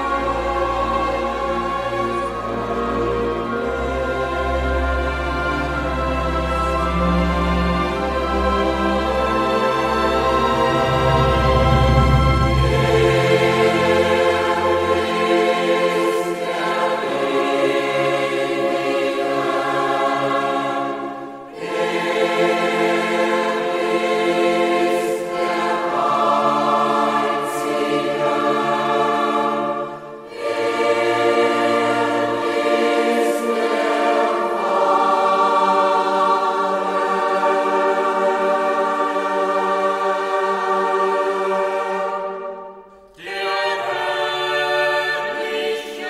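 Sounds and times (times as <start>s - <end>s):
choir singing sustained chords: 0.0s - 46.0s.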